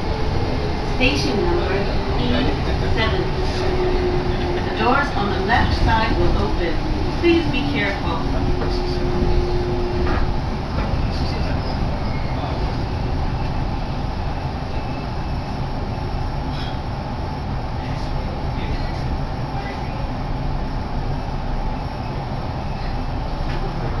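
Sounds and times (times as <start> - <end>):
train running noise: 0.0 - 24.0.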